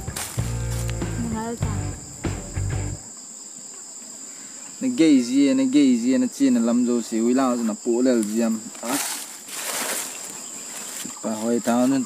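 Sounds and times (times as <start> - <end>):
low bass music: 0.0 - 3.0
high-pitched insect drone: 0.0 - 3.4.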